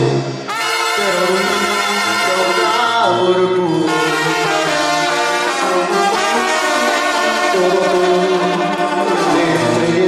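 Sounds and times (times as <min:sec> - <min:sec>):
brass band playing: 0:00.3 - 0:10.0.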